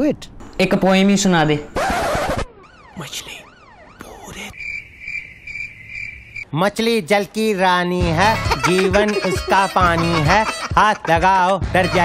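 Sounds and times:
crickets chirping: 4.3s - 6.5s
man's voice: 6.6s - 12.0s.

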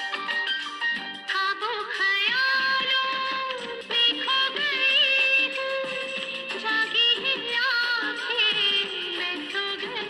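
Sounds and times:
instrumental film music backing: 0.0s - 10.0s.

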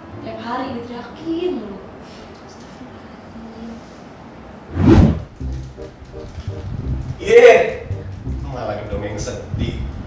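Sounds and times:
whoosh sound effect: 4.7s - 5.4s
short music cue over low beat: 5.0s - 8.7s.

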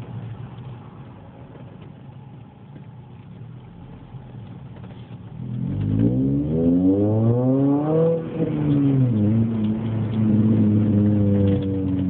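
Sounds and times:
car engine and exhaust from cabin: 0.0s - 12.0s.

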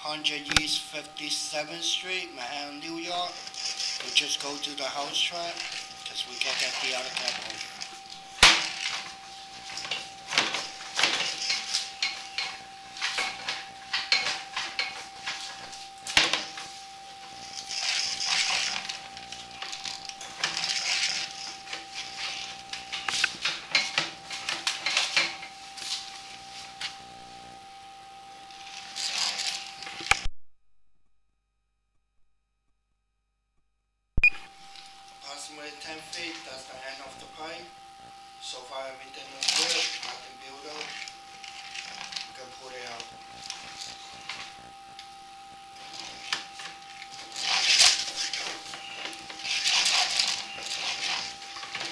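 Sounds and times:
steady high tone: 0.0s - 27.0s.

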